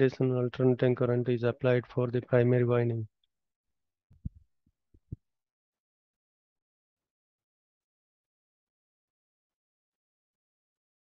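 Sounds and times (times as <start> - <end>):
soft low thumps and clicks: 4.1 - 4.4.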